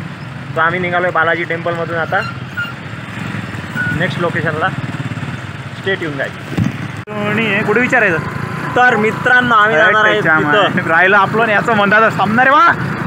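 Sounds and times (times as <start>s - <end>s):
man talking: 0.6s - 2.3s, 3.9s - 4.8s, 5.8s - 6.4s, 7.1s - 12.8s.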